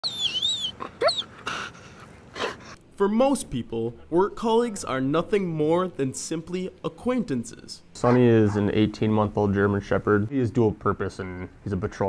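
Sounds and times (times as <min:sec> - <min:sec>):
dog whining: 0:00.0 - 0:02.8, 0:08.0 - 0:08.8.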